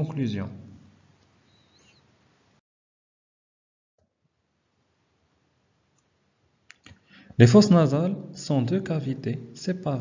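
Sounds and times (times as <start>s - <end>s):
faint room hiss: 0.0s - 2.6s, 4.0s - 10.0s.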